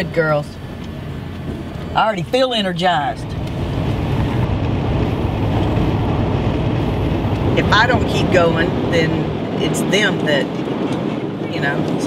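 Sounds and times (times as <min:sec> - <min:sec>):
road and engine noise in van: 0:00.0 - 0:12.0.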